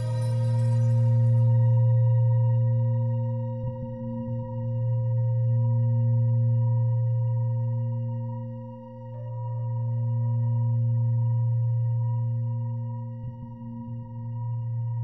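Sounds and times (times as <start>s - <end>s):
high shimmering layer: 0.0s - 1.8s
low drone tone: 0.0s - 8.5s.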